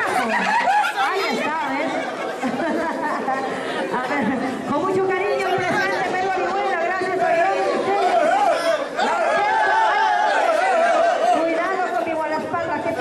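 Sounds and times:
loud party chatter: 0.0 - 13.0.

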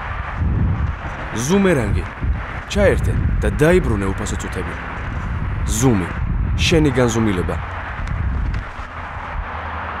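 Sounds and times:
outdoor ambience with low rumble: 0.0 - 10.0.

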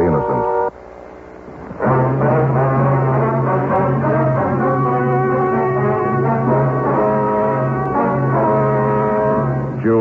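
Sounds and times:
orchestral brass music: 1.8 - 10.0.

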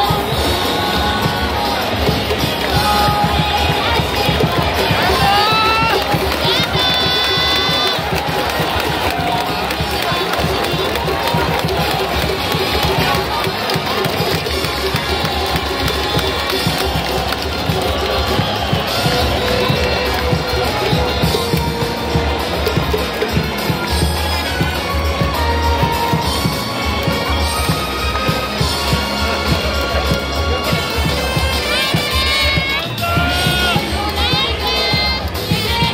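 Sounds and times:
crowd noise: 0.0 - 35.9
stadium music: 0.0 - 35.9.

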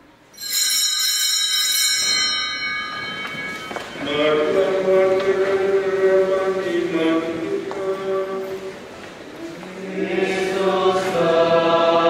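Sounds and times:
altar bells ringing: 0.3 - 6.3
singing with sustained notes: 3.8 - 12.0.

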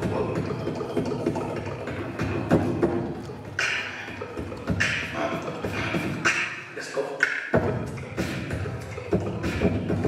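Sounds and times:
beatboxing into a microphone: 0.0 - 10.0.

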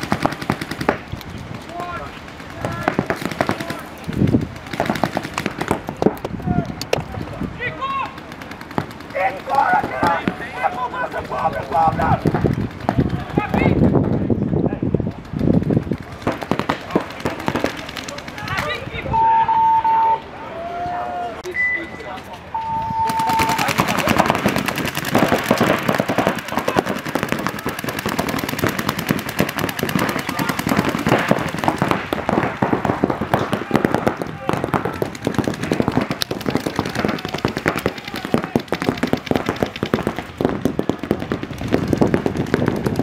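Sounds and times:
paintball markers firing rapidly: 0.0 - 14.4, 15.0 - 18.9, 23.0 - 43.0.

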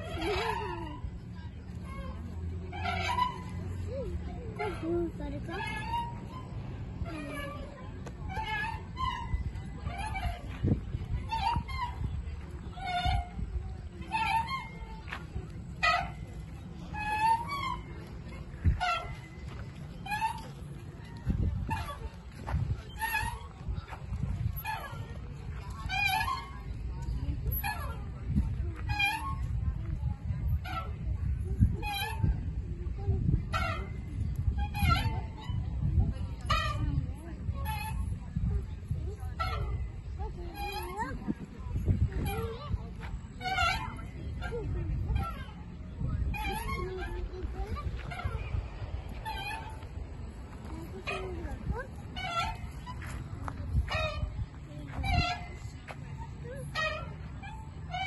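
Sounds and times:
chain swing squeaking: 0.0 - 58.0
wind rumble on microphone: 0.0 - 58.0.

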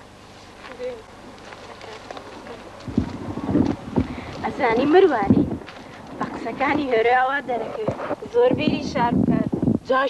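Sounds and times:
rustling in brush: 0.2 - 8.3.

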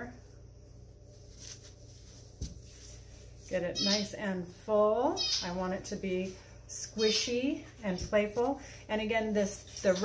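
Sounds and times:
faint rustles: 0.0 - 3.6
low steady hum: 0.0 - 10.0.

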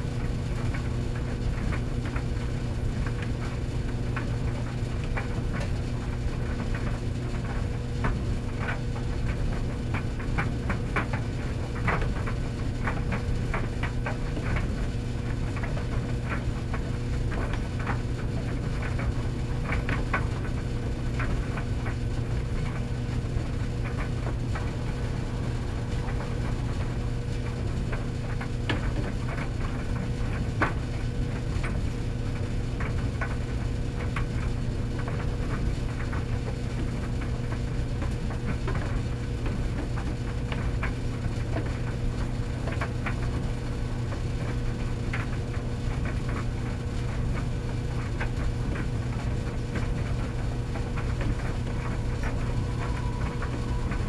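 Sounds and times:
tumble dryer motor hum: 0.0 - 54.0.

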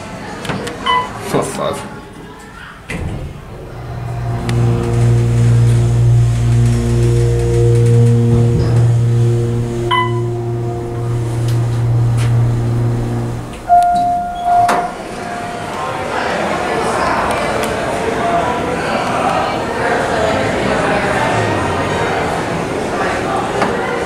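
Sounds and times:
elevator pump motor humming: 2.9 - 16.4
loud steady tone: 3.4 - 16.4
short high tone: 3.6 - 16.0.

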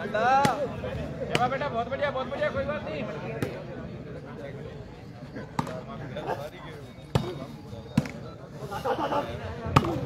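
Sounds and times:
faint chatter: 0.0 - 10.0.

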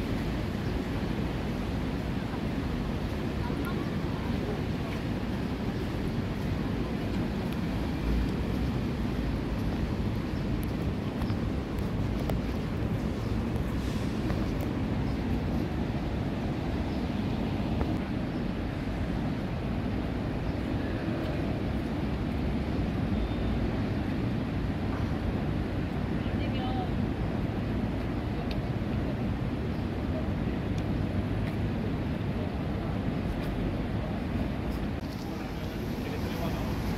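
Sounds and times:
distant city traffic: 0.0 - 36.9.

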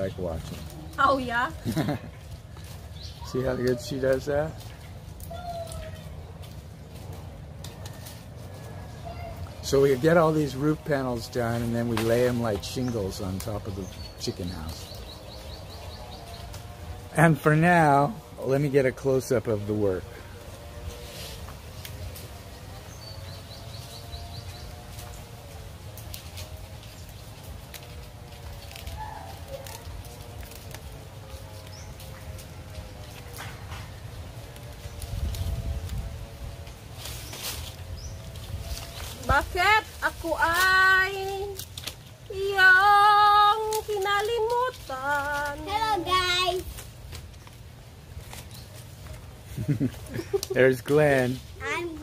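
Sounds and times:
palm leaves rustling and crackling: 0.0 - 52.0
steady low rumble: 19.5 - 50.6.

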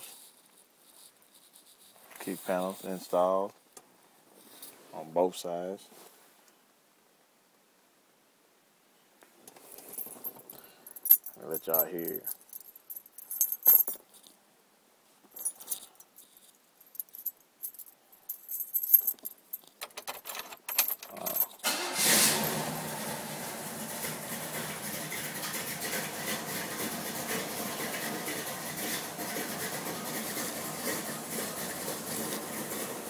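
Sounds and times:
car keys jangling: 15.4 - 22.6.

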